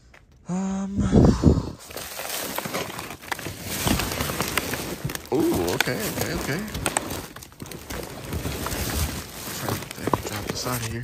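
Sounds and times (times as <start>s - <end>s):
plastic bags and boxes rustling: 1.8s - 11.0s.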